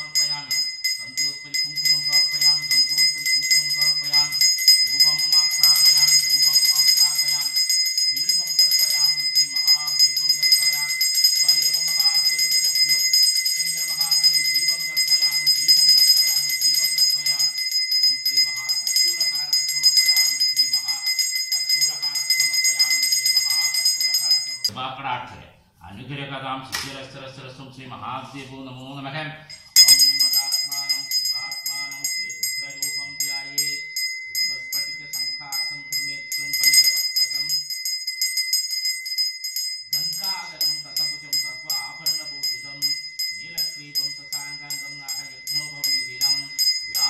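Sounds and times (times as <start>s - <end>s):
person chanting: 0.0s - 7.6s, 8.2s - 21.1s, 21.7s - 24.9s, 30.0s - 33.8s, 39.9s - 47.0s
bell ringing continuously: 0.0s - 24.7s, 29.5s - 47.0s.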